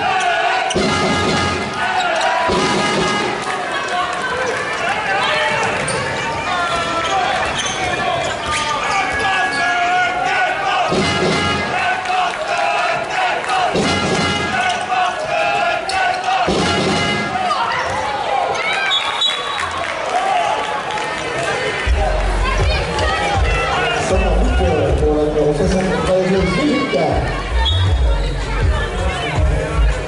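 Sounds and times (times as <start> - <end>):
crowd voices: 0.0 - 30.0
players shouting: 0.0 - 30.0.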